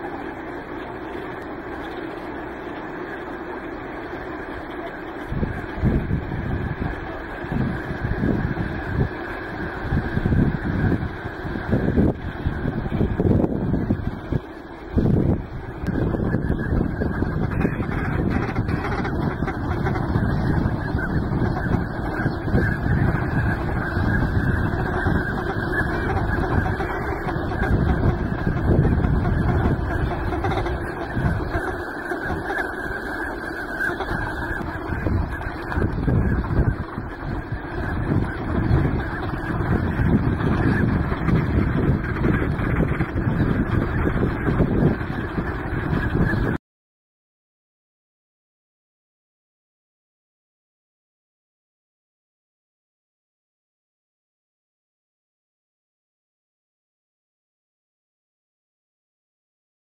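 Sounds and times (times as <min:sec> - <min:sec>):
large flock of ducks calling: 0:00.0 - 0:46.6.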